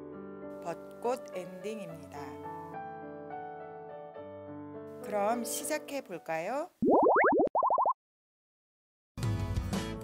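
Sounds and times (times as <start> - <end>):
cartoon rising bloops: 6.8 - 8.0.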